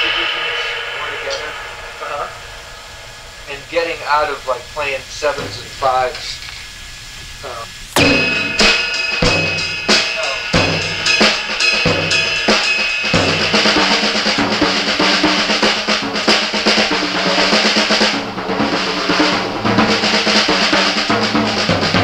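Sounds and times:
drum kit groove: 0.0s - 22.0s
heavy accented drum strokes: 0.0s - 22.0s
ringing cymbal: 0.0s - 22.0s.

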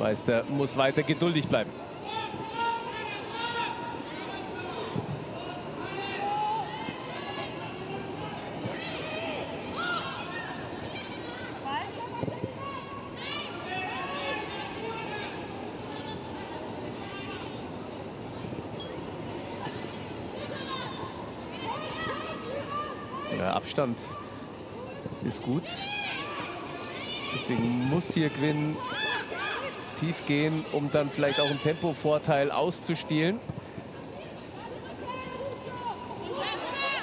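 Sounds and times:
players shouting: 25.3s - 33.2s, 34.7s - 37.0s.

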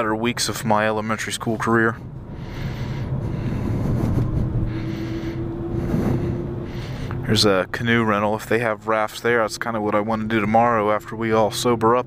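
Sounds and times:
engine and road rumble: 0.0s - 12.0s
thin steady hum: 1.3s - 12.0s.

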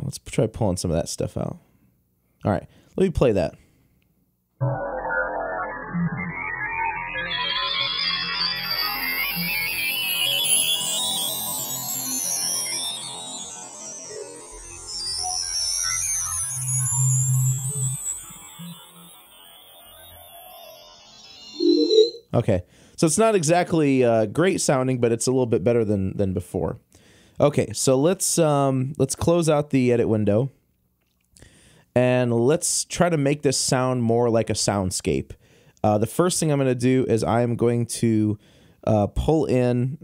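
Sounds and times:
noisy synthesizer wash with sweeps: 4.6s - 22.2s.

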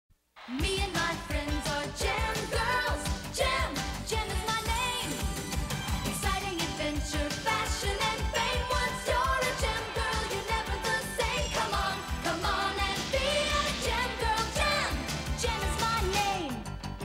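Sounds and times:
woman singing: 0.5s - 5.2s, 6.1s - 16.7s
synthesizers: 0.5s - 17.0s
steady drum beat: 0.6s - 16.2s.

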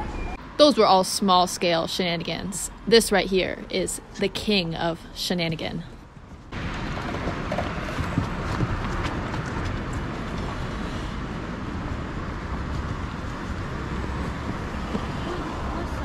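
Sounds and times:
traffic hum: 0.0s - 16.0s
footsteps on pavement: 5.4s - 11.2s, 12.6s - 15.8s.

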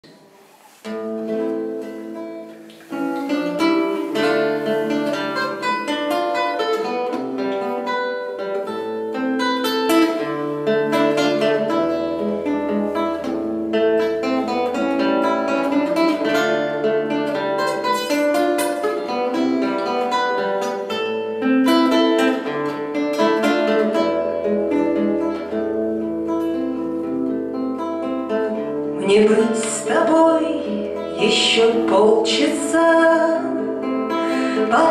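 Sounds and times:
acoustic guitar playing: 0.0s - 34.9s.

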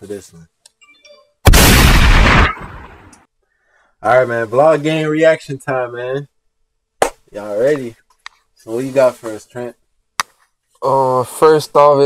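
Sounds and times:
explosion blast sound effect: 1.4s - 3.1s.

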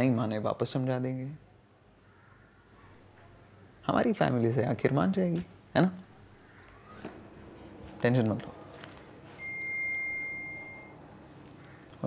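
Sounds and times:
phone notification ding: 9.4s - 11.0s.

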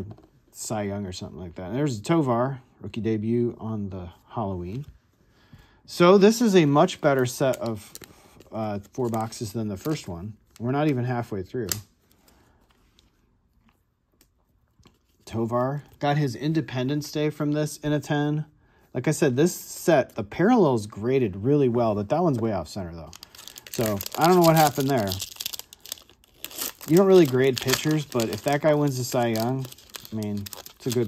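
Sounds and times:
plastic card sleeve handled: 22.2s - 31.0s
foil wrapper crinkling and tearing: 23.0s - 31.0s.

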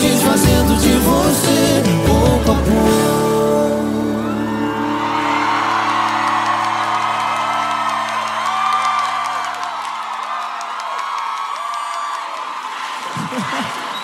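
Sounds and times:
crowd singing along and whooping: 0.0s - 8.5s.

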